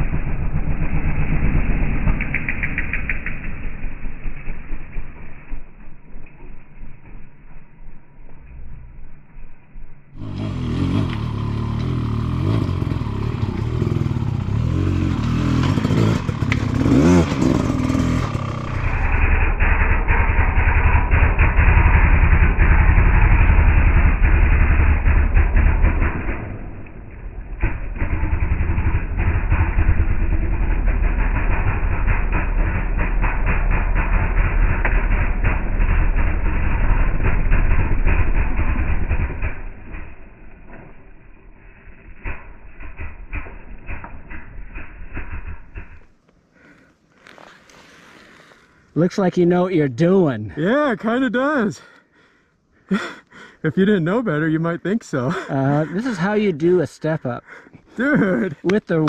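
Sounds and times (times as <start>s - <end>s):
dirt bike engine revving: 10.2s - 41.1s, 55.1s - 59.0s.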